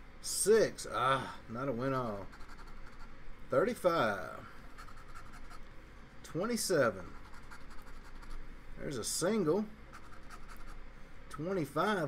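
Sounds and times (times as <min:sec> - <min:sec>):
lottery ticket being scratched: 0:02.1 - 0:03.1, 0:04.6 - 0:05.6, 0:07.0 - 0:08.4.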